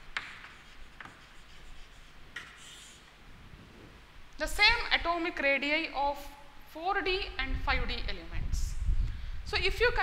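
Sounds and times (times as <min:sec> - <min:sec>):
chalk scratching on chalkboard: 0:00.2 - 0:03.2.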